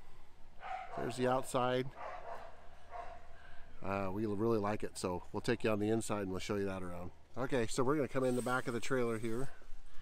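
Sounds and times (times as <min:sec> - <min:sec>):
low outdoor ambient noise: 0:00.0 - 0:10.0
dog barking faintly: 0:00.6 - 0:03.4.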